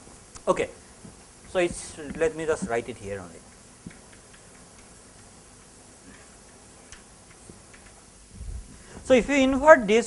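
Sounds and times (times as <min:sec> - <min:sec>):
low hiss of room noise: 0:00.0 - 0:10.0
chalk tapping on blackboard: 0:01.7 - 0:02.9.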